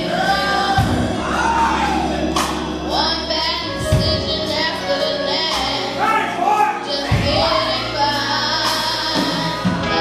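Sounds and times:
church band playing: 0:00.0 - 0:10.0
boy singing into microphone: 0:02.8 - 0:10.0.

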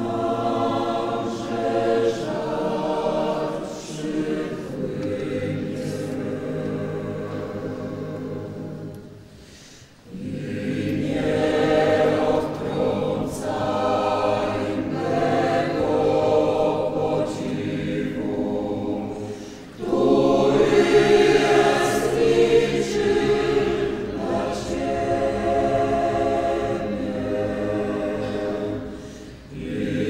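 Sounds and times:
choir singing: 0:00.0 - 0:30.0.

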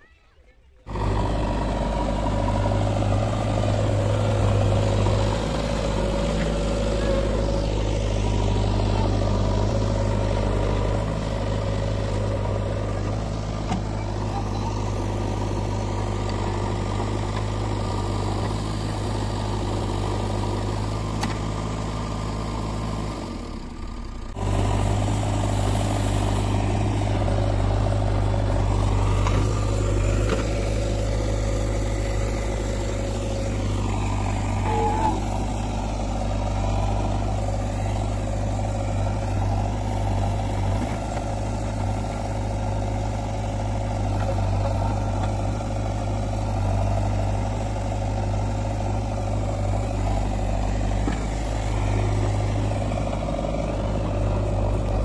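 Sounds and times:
diesel engine running under load: 0:00.0 - 0:55.0.

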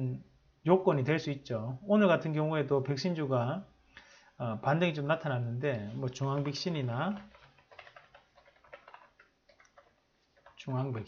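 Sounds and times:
computer keyboard typing: 0:06.2 - 0:10.7.

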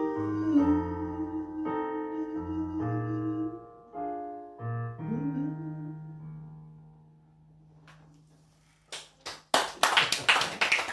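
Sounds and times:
small group clapping: 0:08.8 - 0:10.9.

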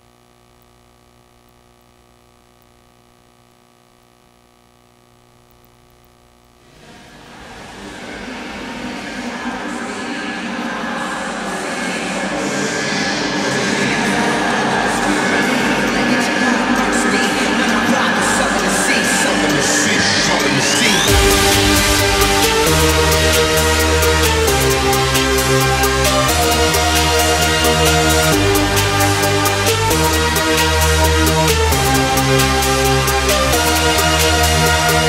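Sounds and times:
faint steady hum: 0:00.0 - 0:08.2
electronic dance music: 0:14.2 - 0:35.0
rushing noise: 0:21.1 - 0:25.8
rising synth sweep: 0:21.1 - 0:30.1.

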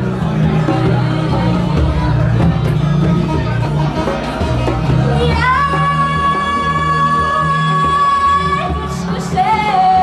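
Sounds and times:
bass: 0:00.0 - 0:10.0
drums: 0:00.0 - 0:10.0.

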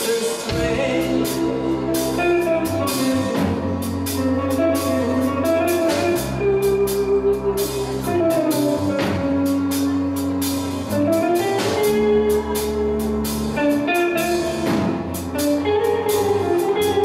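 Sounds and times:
drum kit with cymbals: 0:00.0 - 0:17.0
electric bass: 0:00.0 - 0:17.0
electric guitar: 0:00.0 - 0:17.0.

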